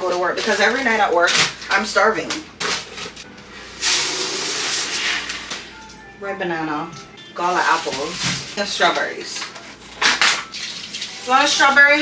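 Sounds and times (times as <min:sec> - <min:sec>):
plastic bag rustling: 0:07.4 - 0:10.0.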